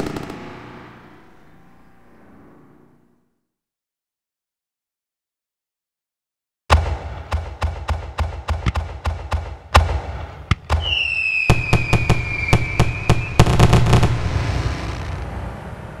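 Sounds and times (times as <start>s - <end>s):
firework bangs: 0.0s - 1.6s, 6.7s - 15.4s
fireworks rumble: 0.0s - 3.0s, 6.7s - 16.0s
firework whistle falling in pitch: 10.8s - 13.7s.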